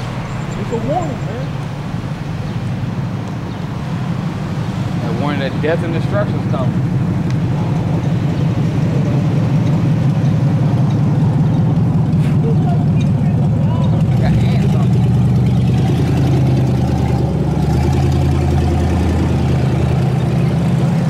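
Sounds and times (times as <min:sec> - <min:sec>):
vehicle engine droning: 0:00.0 - 0:21.0.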